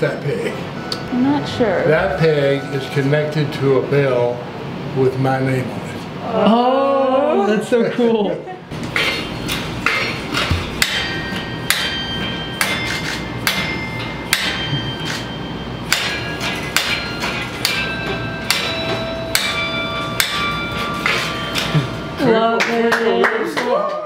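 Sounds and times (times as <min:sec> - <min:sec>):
tower bells ringing: 0:00.6 - 0:04.9, 0:10.1 - 0:23.6.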